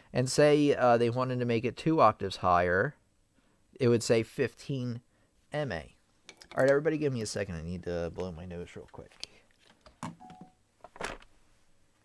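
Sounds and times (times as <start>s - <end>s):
short steady beep: 10.2s - 10.6s.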